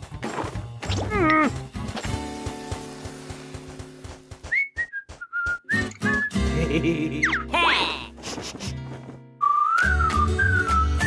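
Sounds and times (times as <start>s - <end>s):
cartoon background music: 0.0s - 2.4s, 5.7s - 11.0s
whistled tune: 4.5s - 6.6s, 9.4s - 11.0s.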